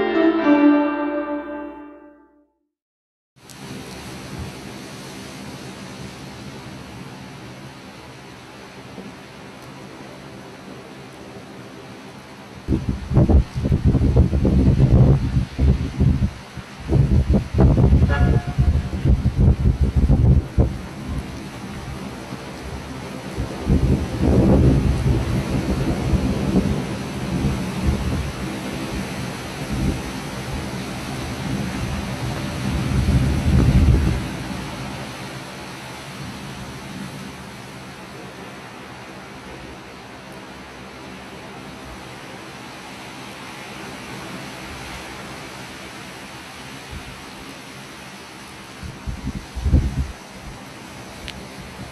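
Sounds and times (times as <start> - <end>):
wind gusts: 12.6 - 39.2, 39.8 - 51.9.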